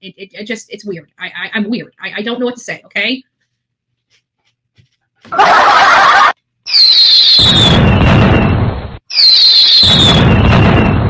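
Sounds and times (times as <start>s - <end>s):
falling whistle: 5.4s - 11.0s
rumbling explosion: 7.3s - 11.0s.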